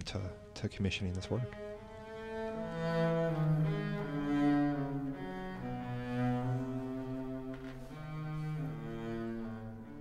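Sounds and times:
bowed double bass: 1.0s - 10.0s.

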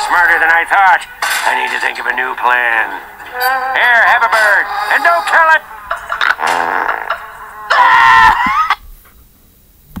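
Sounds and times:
cartoon warbling cry: 3.2s - 8.8s
cartoon high wail: 7.5s - 8.8s.

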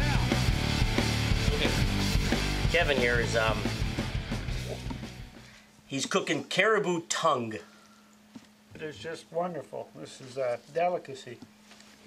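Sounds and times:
rock music with steady beat: 0.0s - 5.5s.

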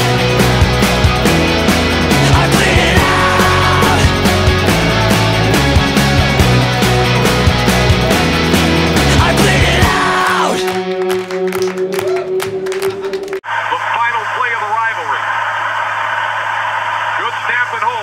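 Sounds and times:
rock song: 0.0s - 13.4s
stadium crowd noise: 13.4s - 18.0s.

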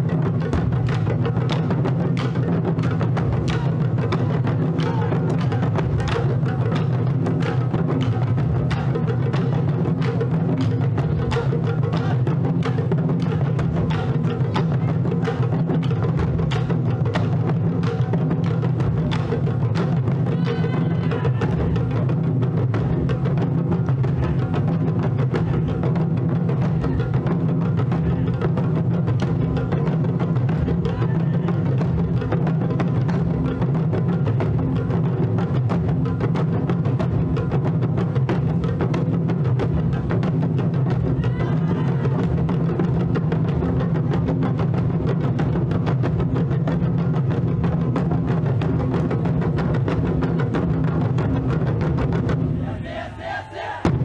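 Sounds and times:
rapid dense drumming: 0.0s - 54.0s.

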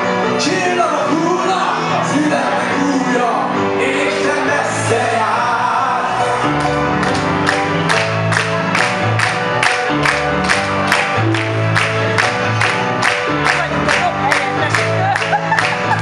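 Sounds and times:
electric keyboard chords: 0.0s - 16.0s
electric bass notes: 6.3s - 16.0s.

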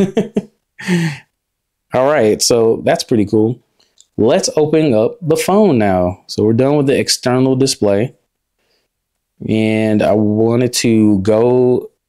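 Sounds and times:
person laughing: 0.0s - 1.3s
breathy sigh: 0.8s - 1.3s.

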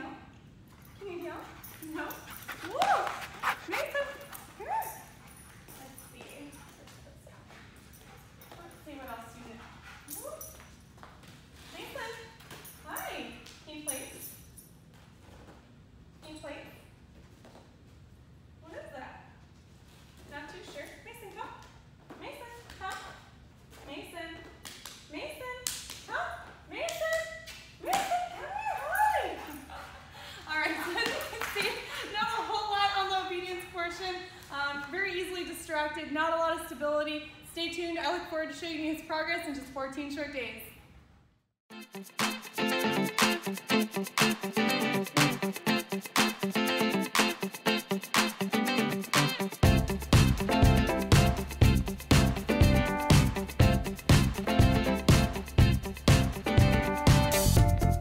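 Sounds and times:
woman calling to a dog: 25.2s - 29.6s.

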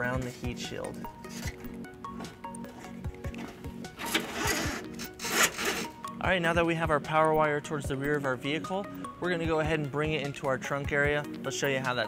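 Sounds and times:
background music with steady beat: 0.0s - 12.0s
wire rubbing against car underbody: 0.4s - 1.8s, 2.8s - 6.2s.

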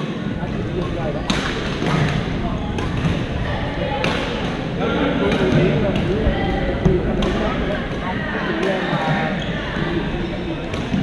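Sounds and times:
voices and chatter: 0.0s - 11.0s
racket hitting shuttlecock: 0.8s - 3.2s, 5.3s - 9.4s.

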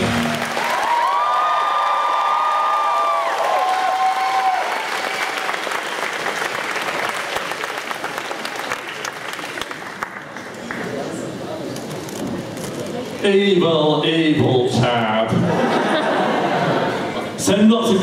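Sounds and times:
audience cheering and whooping: 0.0s - 7.6s
audience applause: 0.0s - 11.5s.

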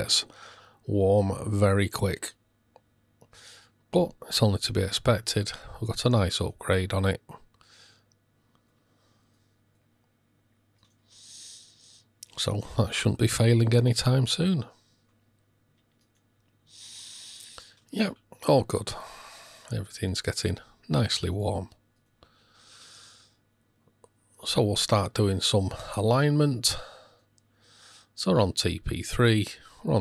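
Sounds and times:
soft exhaled breath: 11.1s - 12.1s.

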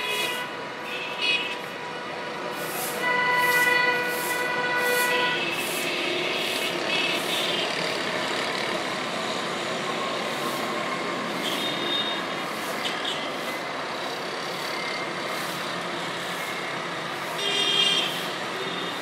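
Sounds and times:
street traffic: 0.0s - 19.0s.

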